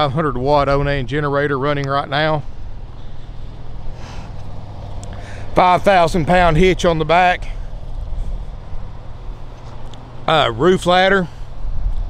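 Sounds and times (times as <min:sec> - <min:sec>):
generator humming: 0:00.0 - 0:12.0.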